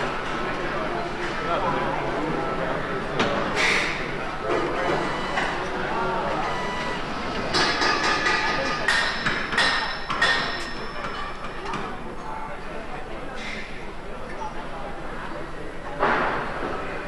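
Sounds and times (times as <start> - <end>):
indistinct voices: 0.0 - 17.0
sharp ringing knocks on metal: 7.5 - 11.2.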